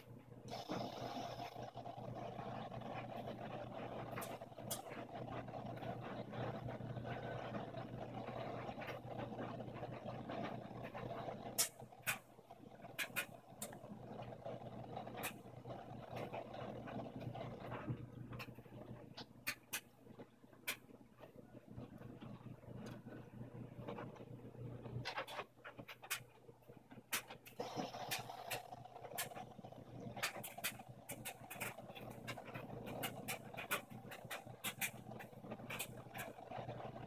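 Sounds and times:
washing machine motor hum: 0:00.0 - 0:37.0.

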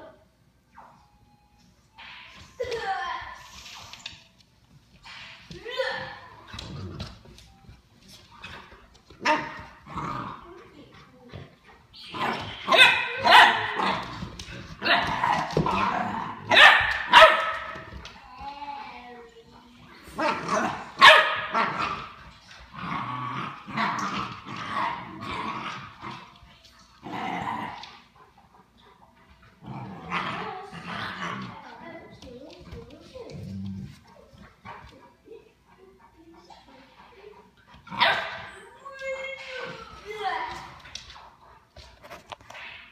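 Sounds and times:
dogs barking and yipping: 0:11.6 - 0:18.0, 0:20.2 - 0:22.8, 0:37.4 - 0:38.9.

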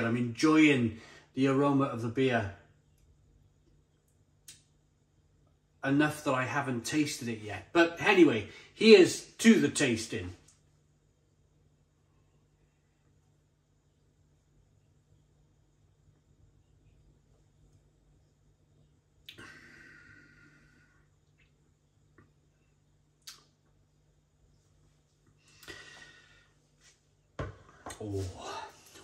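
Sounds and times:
faint steady hum: 0:00.0 - 0:29.0
breaths out: 0:19.3 - 0:21.1.

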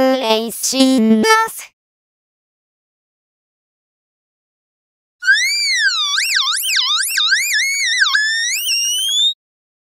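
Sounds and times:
high-pitched siren wail: 0:05.2 - 0:09.4.

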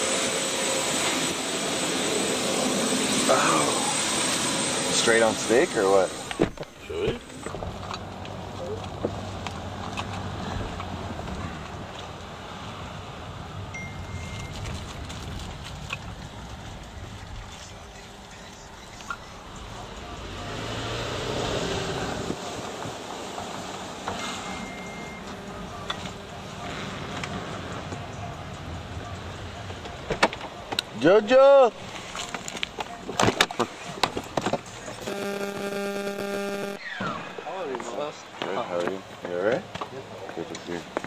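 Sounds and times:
car engine and road hum: 0:00.0 - 0:38.3
short high beeps: 0:24.2 - 0:25.2, 0:35.0 - 0:36.9.

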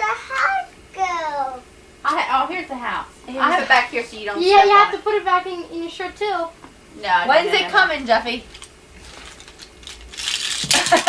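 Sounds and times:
paper rustling and crinkling: 0:08.5 - 0:11.0.

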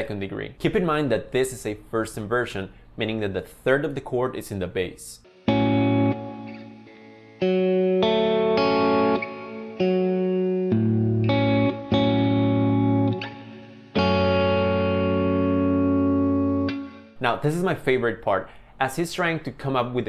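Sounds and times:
electric guitar chords: 0:05.3 - 0:17.2.

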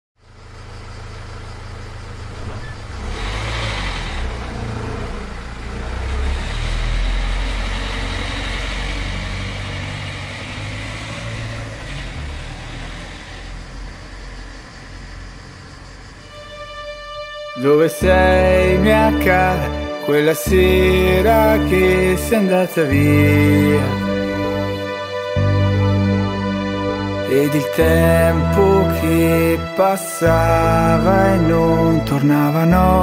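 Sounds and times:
car engine pulling away: 0:00.2 - 0:33.0
road noise: 0:00.2 - 0:33.0.

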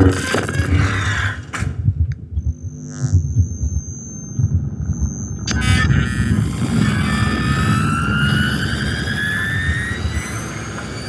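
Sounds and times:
low rumbling background: 0:00.0 - 0:11.0
synthesizer tone rising in pitch: 0:02.4 - 0:11.0.

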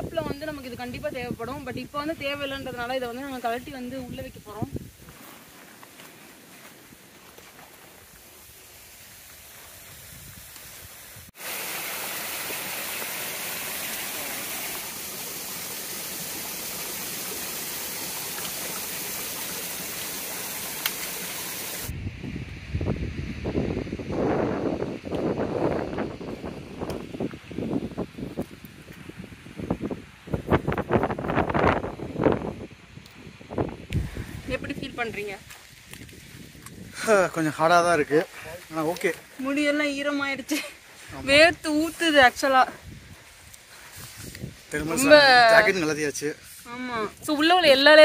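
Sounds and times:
faint hiss: 0:00.0 - 0:48.0
mountain stream rushing: 0:05.0 - 0:21.9, 0:43.6 - 0:48.0.

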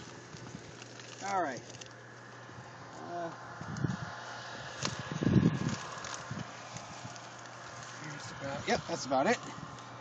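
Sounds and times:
plants rustling and crackling: 0:00.0 - 0:10.0.

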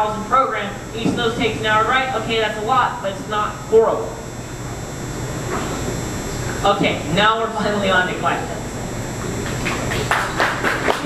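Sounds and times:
audience clapping: 0:09.4 - 0:11.0.

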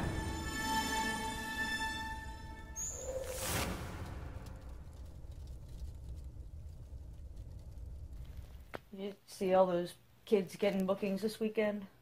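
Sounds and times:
faint crackle: 0:02.8 - 0:09.2
low steady rumble: 0:03.8 - 0:09.0.

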